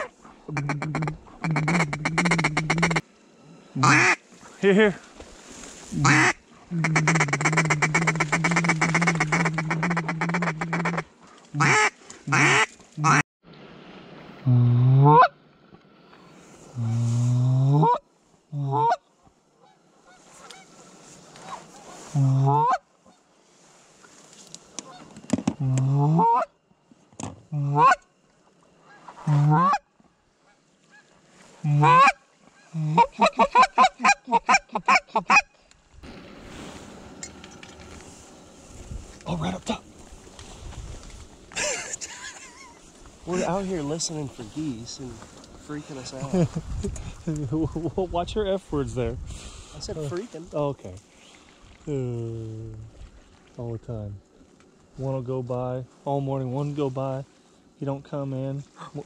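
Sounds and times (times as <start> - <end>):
goose calling: 0.0 - 3.0, 3.8 - 4.2, 5.9 - 13.2, 21.4 - 22.8, 26.0 - 26.5, 27.7 - 28.0, 28.8 - 29.8, 30.5 - 35.5.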